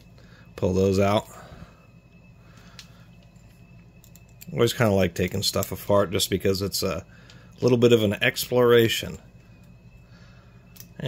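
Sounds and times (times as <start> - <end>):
faint high whine: 0.0 - 11.0
low steady hum: 0.0 - 11.0.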